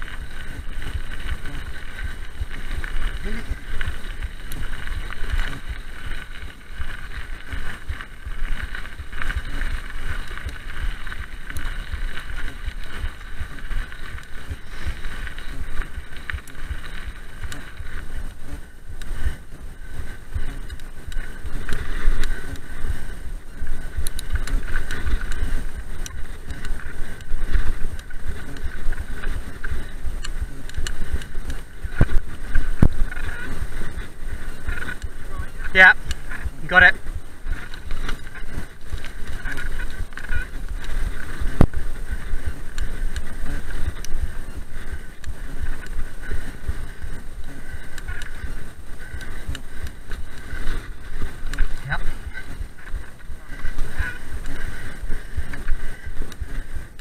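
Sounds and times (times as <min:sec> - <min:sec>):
bike rattling over bumps: 0:00.0 - 0:57.0
bike tyres rumbling over gravel: 0:00.0 - 0:57.0
wind buffeting microphone: 0:00.0 - 0:57.0.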